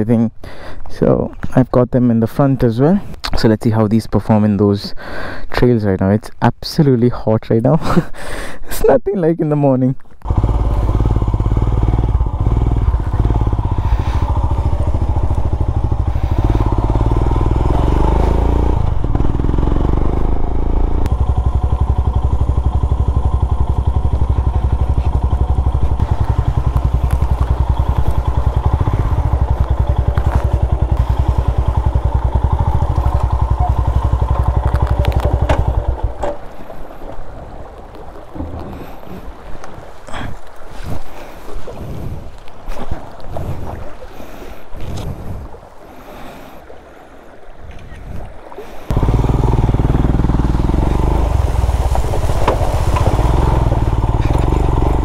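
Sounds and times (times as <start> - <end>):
motorcycle engine running: 10.2 - 36.8, 48.9 - 55.0.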